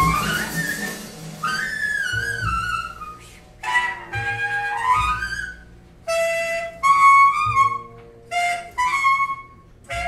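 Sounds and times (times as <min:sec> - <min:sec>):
soft drums: 0:00.0 - 0:03.0
jazz big band music: 0:00.0 - 0:10.0.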